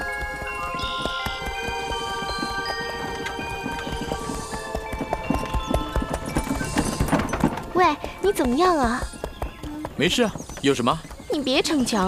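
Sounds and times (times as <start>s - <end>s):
background music: 0.0s - 12.0s
horse hooves clip-clopping: 0.0s - 12.0s.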